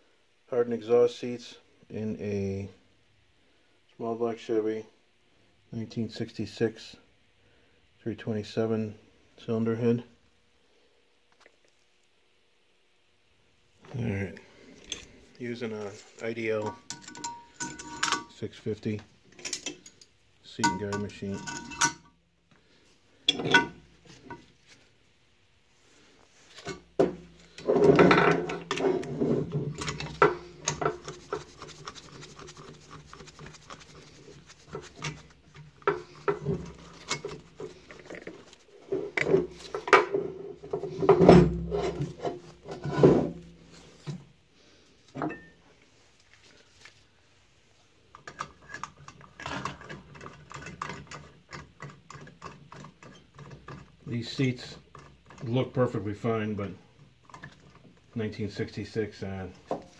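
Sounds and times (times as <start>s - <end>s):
hands rubbing on metal: 28.9s - 39.8s.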